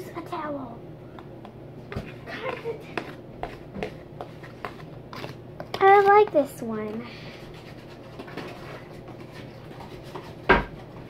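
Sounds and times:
girl's voice: 0.0 - 0.8, 2.2 - 3.2, 5.7 - 7.2.

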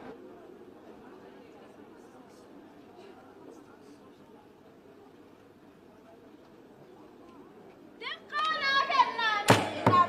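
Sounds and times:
girl chanting: 8.1 - 10.0.

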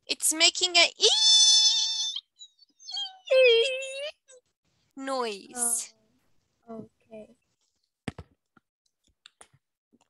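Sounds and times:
person imitating microphone squeal: 1.0 - 4.4.

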